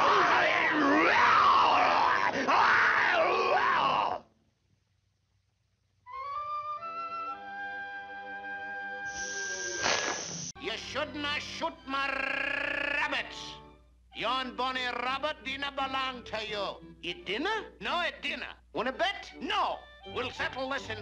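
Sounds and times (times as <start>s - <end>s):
loud wavering yell: 0.0s - 4.3s
orchestral brass and woodwind music: 6.1s - 9.1s
short burst of noise: 9.1s - 10.6s.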